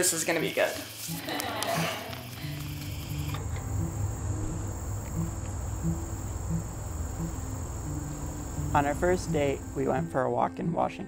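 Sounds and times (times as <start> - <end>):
soft background music: 0.0 - 11.0
high-pitched insect drone: 2.0 - 10.0.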